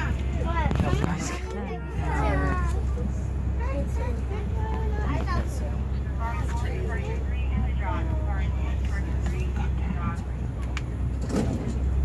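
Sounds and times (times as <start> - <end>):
truck engine low rumble: 0.0 - 12.0.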